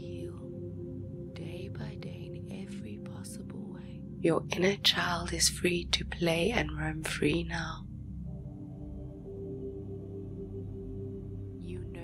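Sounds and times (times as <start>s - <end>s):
ambient music of held tones: 0.0s - 12.0s
faint whispering voice: 1.4s - 7.8s.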